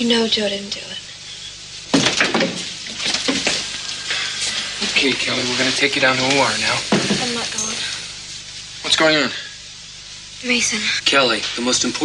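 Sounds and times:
rustling: 1.6s - 8.7s.

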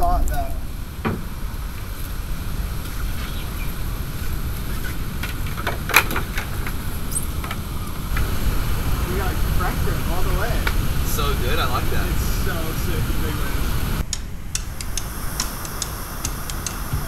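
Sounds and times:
steady low rumble: 0.0s - 17.0s.

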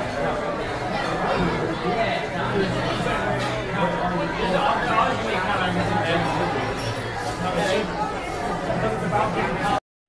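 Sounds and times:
chatter of many voices: 0.0s - 9.8s.

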